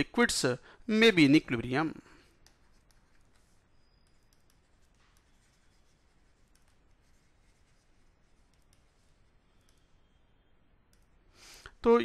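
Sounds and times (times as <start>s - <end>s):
man speaking: 0.0s - 2.0s, 11.8s - 12.0s
breath: 0.6s - 0.8s, 11.3s - 11.8s
stylus clicking on tablet: 2.3s - 10.2s, 10.8s - 11.2s.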